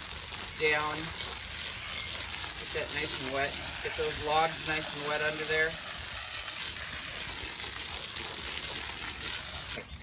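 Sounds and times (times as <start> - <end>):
hose spraying water onto soil: 0.0 - 10.0.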